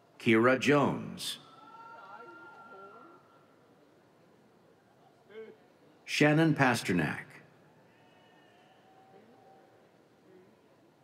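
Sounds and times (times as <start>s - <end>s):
man's voice over loudspeaker: 0.2s - 1.4s, 6.1s - 7.4s.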